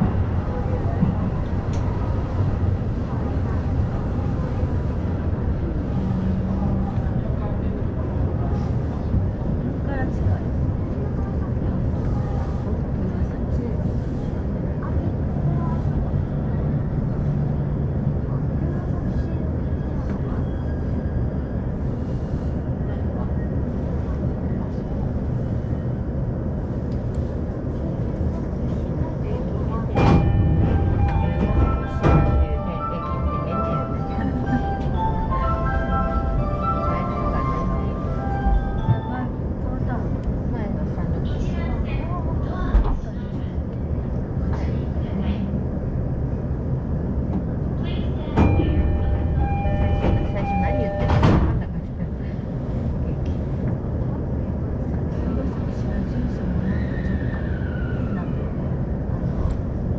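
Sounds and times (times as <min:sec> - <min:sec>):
train rumbling: 0:00.0 - 0:59.9.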